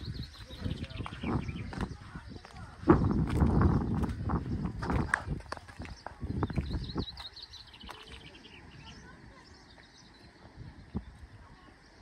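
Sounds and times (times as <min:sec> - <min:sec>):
small birds chirping: 0:00.0 - 0:12.0
wind buffeting microphone: 0:00.0 - 0:12.0.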